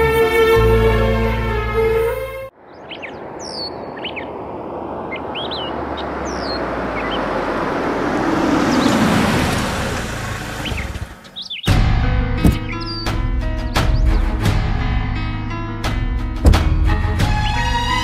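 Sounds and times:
music: 0.0s - 2.5s, 11.7s - 18.0s
birds chirping: 2.5s - 14.4s, 16.5s - 18.0s
cars driving slowly: 2.6s - 11.7s.

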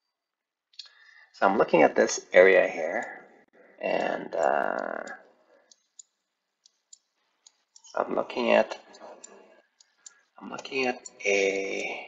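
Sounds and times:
computer mouse clicks: 4.0s - 11.9s.

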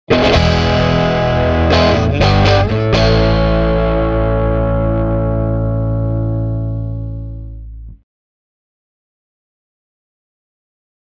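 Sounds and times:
distorted electric guitar chords: 0.1s - 8.0s.

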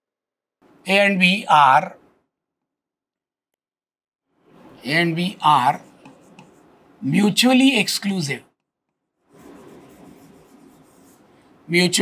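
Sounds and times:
stylus scratching on smart board: 5.4s - 6.8s, 9.3s - 11.4s.

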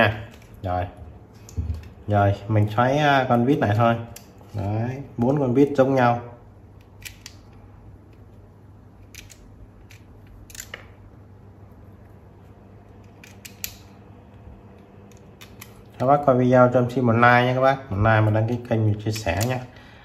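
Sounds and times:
faint low hum: 0.0s - 20.0s.

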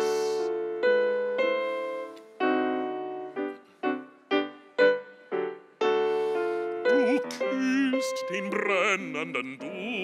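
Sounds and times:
digital piano playing: 0.0s - 10.0s.

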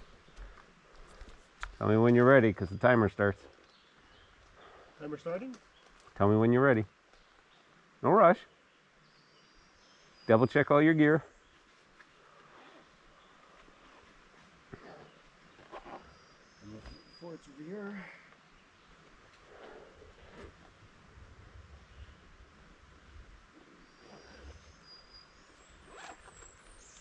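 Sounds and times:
gear rustling: 25.9s - 27.0s.

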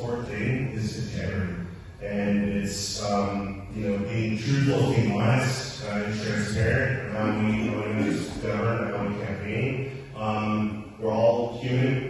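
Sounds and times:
man speaking in low voice: 0.0s - 12.0s.

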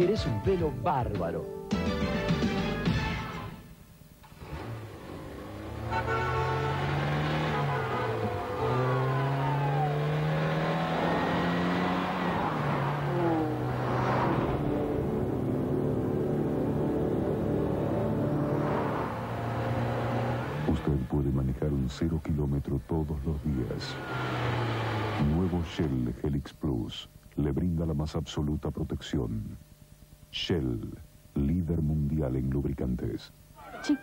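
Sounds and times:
car engine accelerating: 4.2s - 26.1s.

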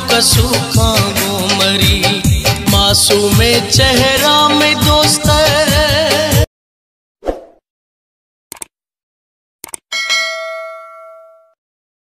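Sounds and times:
quick clicks: 8.5s - 8.7s, 9.6s - 9.9s
bright bell ding: 9.9s - 11.6s.

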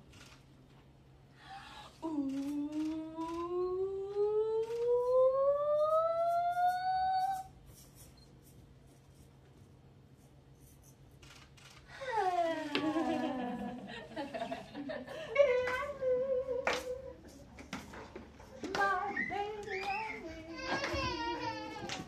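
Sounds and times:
faint knocks and rustles: 17.2s - 22.0s.

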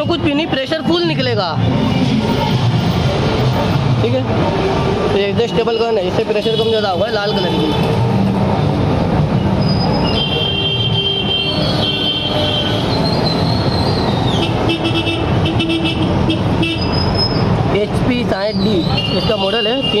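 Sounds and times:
vehicle horns tooting: 9.5s - 17.3s, 18.8s - 20.0s.

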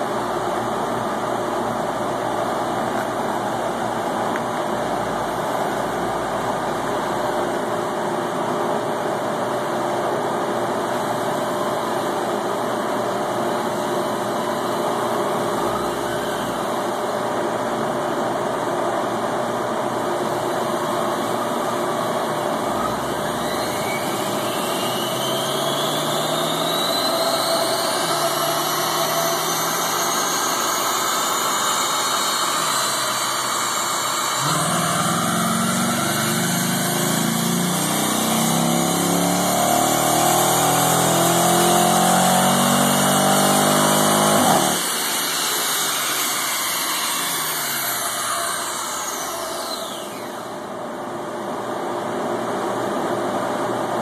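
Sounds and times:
car engine revving on a dynamometer: 21.9s - 49.3s
dynamometer rollers spinning down: 34.2s - 41.1s.

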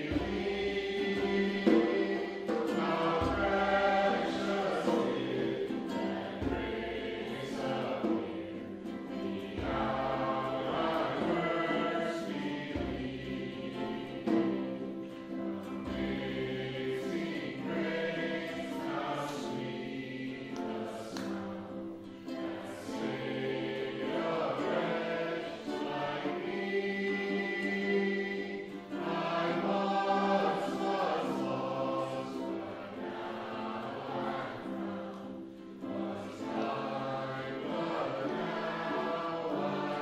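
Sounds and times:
plucked acoustic strings: 0.0s - 40.0s
voices singing together: 0.0s - 40.0s.

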